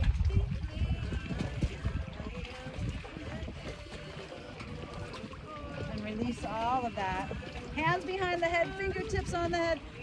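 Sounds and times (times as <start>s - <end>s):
water lapping: 0.0s - 10.0s
wind rumbling on microphone: 0.0s - 10.0s.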